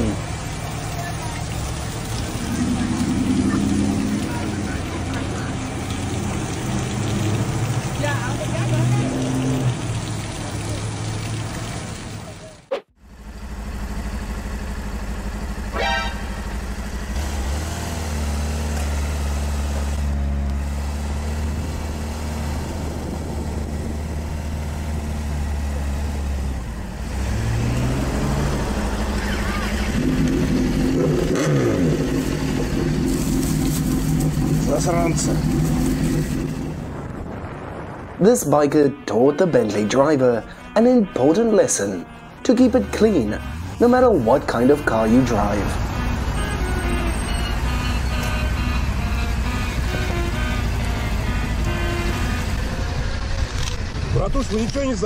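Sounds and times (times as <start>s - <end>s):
voices: 0.0s - 6.6s, 7.8s - 11.1s, 29.0s - 30.0s, 38.2s - 49.1s
spraying water hiss: 0.0s - 12.6s, 27.1s - 36.7s
motorcycle engine idling and revving: 0.0s - 38.2s, 39.8s - 55.0s.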